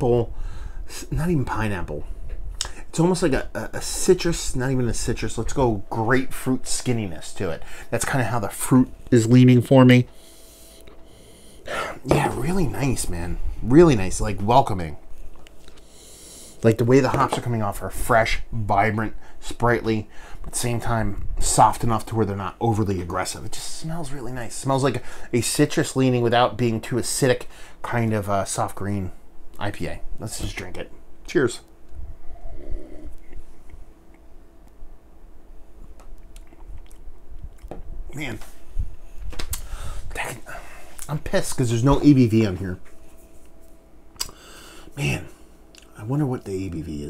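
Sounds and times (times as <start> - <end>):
sharp breath drawn in: 10.2 - 12.0, 44.3 - 45.0
man sniffing: 10.2 - 12.1
mouth clicks: 44.2 - 44.4.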